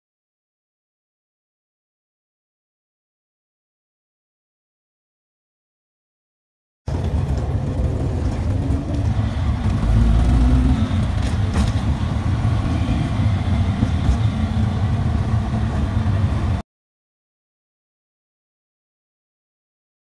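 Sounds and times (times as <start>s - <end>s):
auto-rickshaw engine running: 6.9s - 16.6s
road noise: 6.9s - 16.6s.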